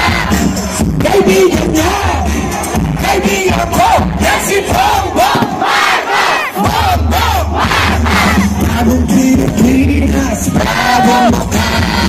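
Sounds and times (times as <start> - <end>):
bass-heavy music from loudspeakers: 0.0 - 12.0
crowd cheering and shouting: 0.0 - 12.0.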